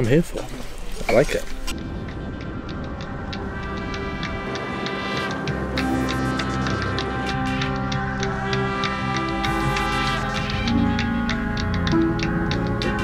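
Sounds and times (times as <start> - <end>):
background music with steady beat: 1.7 - 13.0
deep bass part: 9.2 - 13.0.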